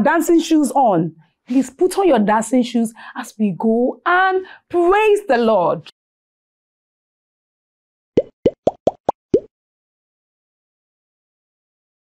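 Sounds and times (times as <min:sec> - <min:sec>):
cartoon bloop plops: 0:08.2 - 0:09.5.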